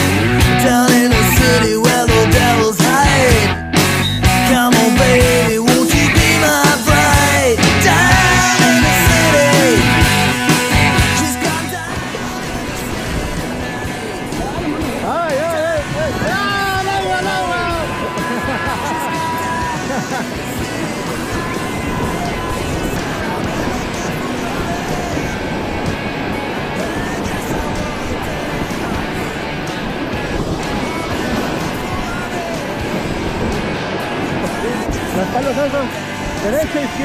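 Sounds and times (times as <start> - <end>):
whitewater rapids rushing: 0.0 - 37.0
people shouting: 4.9 - 11.8, 14.0 - 25.5.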